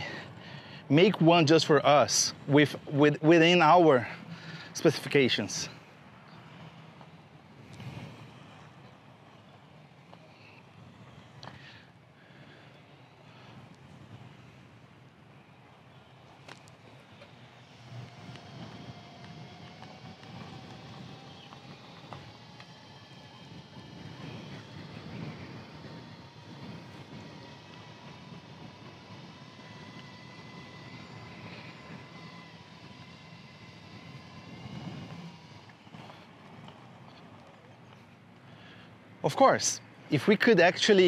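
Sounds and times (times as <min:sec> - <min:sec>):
wheels rolling on pavement: 0:00.0 - 0:41.0
electric motor whining: 0:16.5 - 0:38.0.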